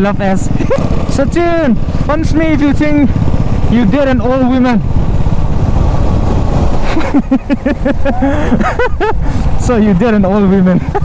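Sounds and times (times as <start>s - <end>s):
motorcycle engines running: 0.0s - 11.0s
wind rushing over microphone: 0.0s - 11.0s
person laughing: 0.5s - 1.0s, 6.8s - 9.4s, 10.7s - 11.0s.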